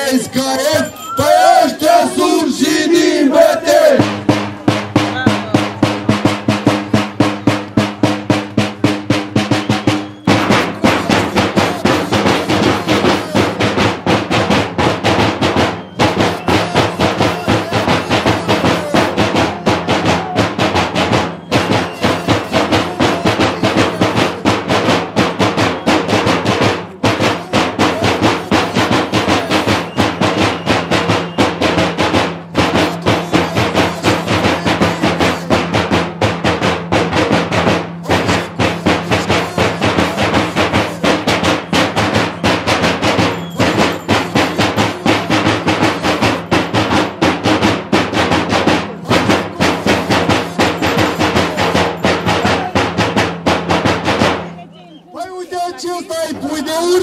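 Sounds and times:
drums beaten in fast rhythm: 0:00.0 - 0:57.0.

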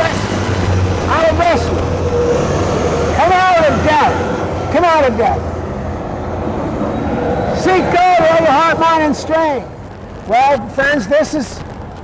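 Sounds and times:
buses and traffic passing: 0:00.0 - 0:12.0.

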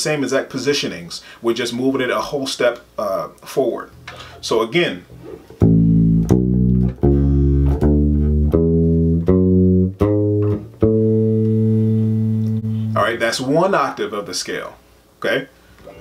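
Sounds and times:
bass guitar playing ascending scale: 0:03.9 - 0:13.7.

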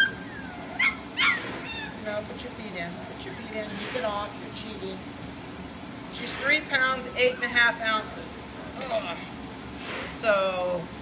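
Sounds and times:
puppies whining and yelping: 0:00.0 - 0:02.2, 0:07.0 - 0:08.8.

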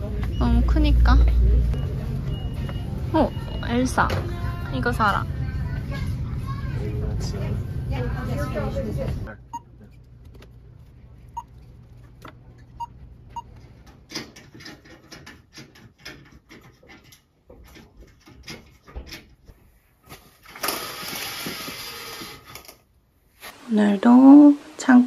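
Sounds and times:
self-checkout scanner beeps: 0:00.0 - 0:05.1, 0:12.7 - 0:13.6
venetian blinds rattling: 0:14.1 - 0:19.5, 0:20.3 - 0:22.8.

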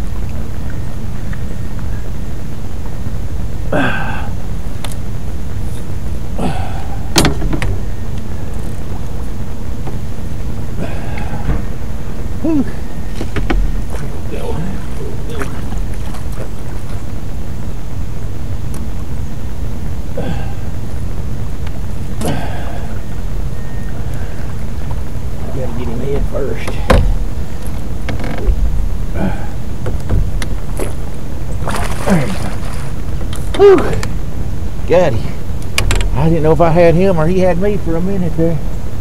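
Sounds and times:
steady low rumble: 0:00.0 - 0:39.0
man grunting and sighing: 0:03.7 - 0:04.4, 0:06.3 - 0:07.2, 0:10.8 - 0:11.8, 0:12.4 - 0:12.9, 0:14.2 - 0:15.5, 0:20.1 - 0:20.8, 0:22.2 - 0:23.0, 0:29.1 - 0:29.8, 0:32.0 - 0:32.6, 0:33.6 - 0:34.1.

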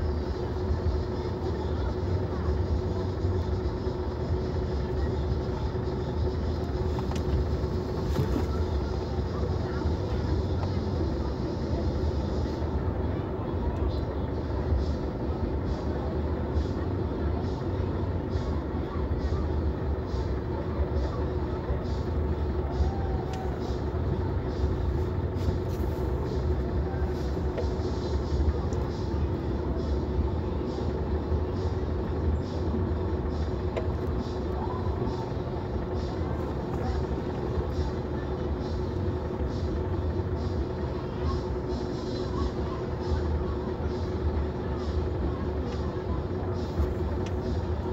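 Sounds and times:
car idling low rumble: 0:00.0 - 0:47.9
muffled voices: 0:00.0 - 0:47.9.

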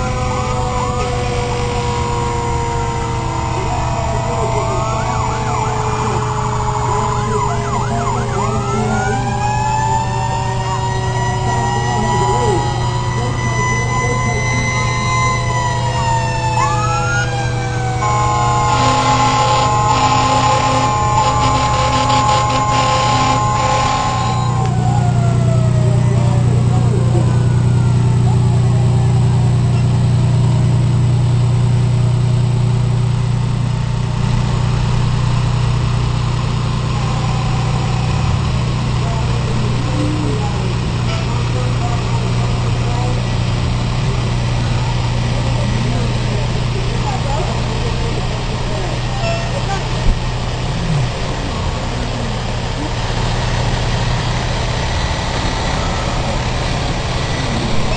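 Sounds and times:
fire engine sirens wailing: 0:00.0 - 0:57.9
truck engine drone: 0:00.0 - 0:57.9
horn chord: 0:17.8 - 0:24.7.

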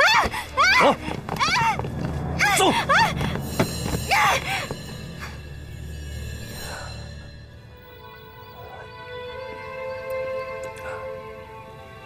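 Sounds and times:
tense background music with drone: 0:00.0 - 0:12.0.

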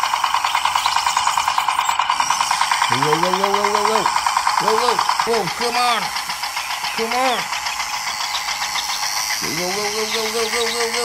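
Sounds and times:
toy electric motor buzzing: 0:00.0 - 0:11.0
person calling out: 0:02.9 - 0:06.3, 0:07.0 - 0:07.5, 0:09.4 - 0:11.0.

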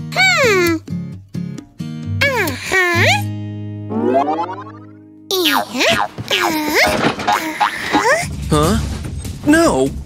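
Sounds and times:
cartoon rising tone: 0:03.9 - 0:05.0.

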